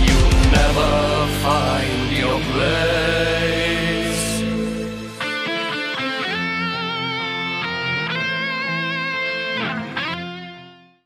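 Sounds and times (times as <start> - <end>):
sustained low backing notes: 0.0 - 8.8
electric guitar lead melody: 0.0 - 11.0.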